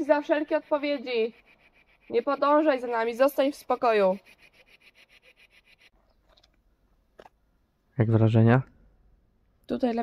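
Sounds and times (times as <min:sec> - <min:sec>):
woman speaking: 0:00.0 - 0:01.4, 0:02.1 - 0:04.3, 0:09.7 - 0:10.0
rapid rasping pulse: 0:00.0 - 0:06.0.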